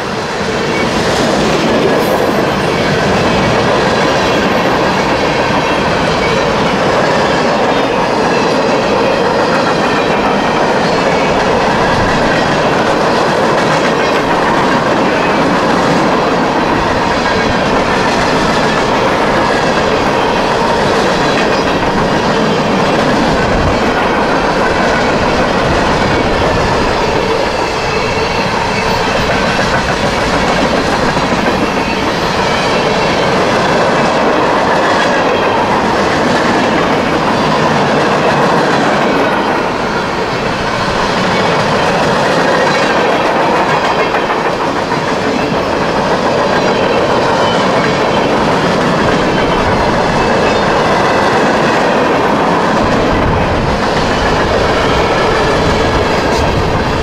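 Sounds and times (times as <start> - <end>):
freight train wheels rumbling on rails: 0.0 - 57.0.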